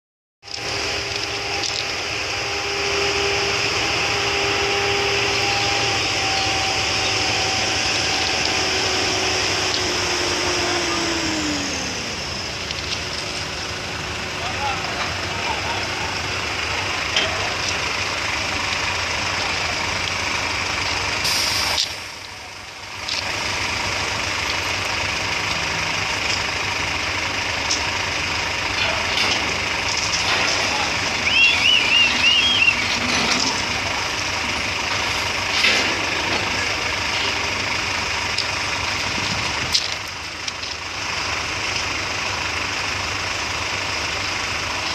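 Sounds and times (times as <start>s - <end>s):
crane diesel engine running: 0.4s - 44.9s.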